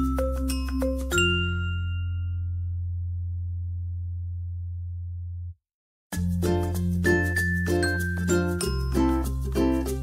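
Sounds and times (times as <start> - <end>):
bell-like music tune: 0.0 - 2.7, 6.2 - 10.0.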